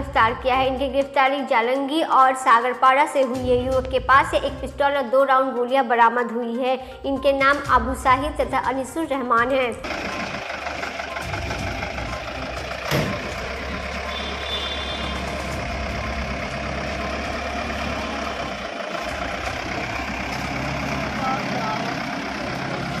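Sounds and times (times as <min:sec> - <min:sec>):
van engine running: 0:09.5 - 0:23.0.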